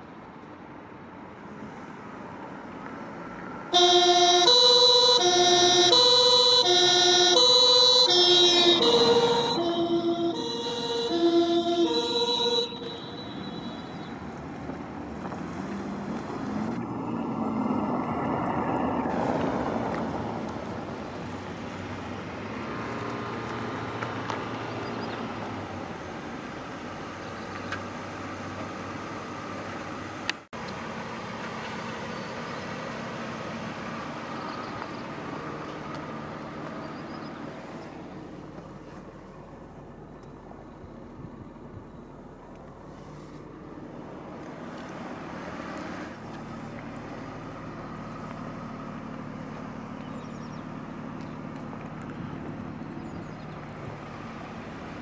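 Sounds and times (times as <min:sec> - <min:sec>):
car moving: 0:00.1 - 0:55.0
two-tone police siren: 0:03.7 - 0:14.4.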